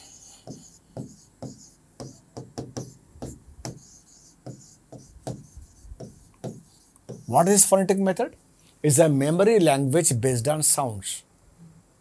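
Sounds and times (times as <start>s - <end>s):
pen tapping and scratching on board: 0.1s - 7.4s.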